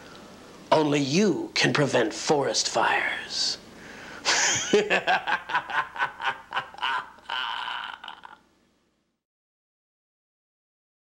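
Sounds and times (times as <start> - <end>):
person laughing breathily: 4.1 - 8.4.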